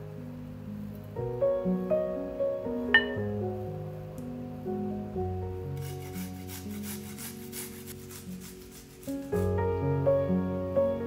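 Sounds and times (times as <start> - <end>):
soft piano music: 0.0 - 11.0
rapid scraping strokes: 5.8 - 9.5.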